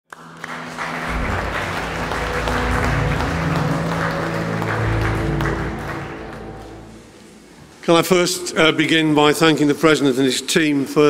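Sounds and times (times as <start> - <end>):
audience applause: 0.1 - 7.4
intro music low held notes: 0.2 - 7.9.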